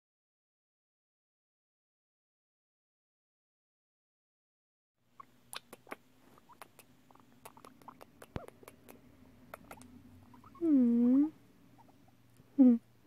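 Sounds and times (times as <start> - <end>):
guinea pig purring: 5.2 - 12.8
guinea pig clicking: 5.5 - 10.6
person humming: 10.5 - 11.4, 12.5 - 12.9.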